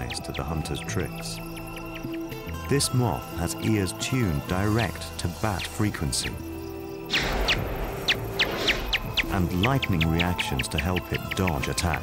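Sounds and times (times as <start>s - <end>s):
bat echolocation chirps: 0.0s - 12.0s.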